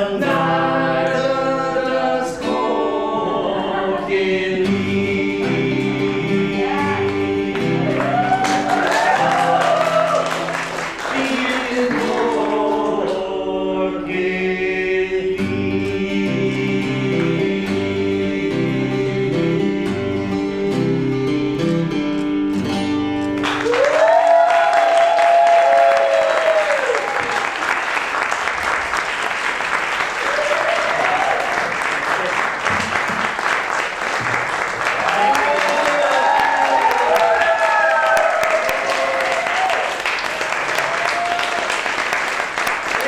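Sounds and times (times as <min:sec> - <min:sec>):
audience applauding and cheering: 0:06.6 - 0:13.2, 0:23.2 - 0:43.0
whoops: 0:07.9 - 0:10.6, 0:23.4 - 0:27.6, 0:30.2 - 0:31.7, 0:35.0 - 0:41.9
acoustic guitar chord: 0:15.4 - 0:23.5.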